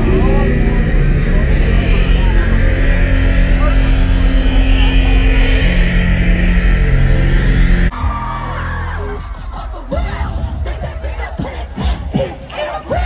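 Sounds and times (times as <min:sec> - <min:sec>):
loud live music with heavy bass: 0:00.0 - 0:13.0
crowd yelling and whooping: 0:07.9 - 0:13.0.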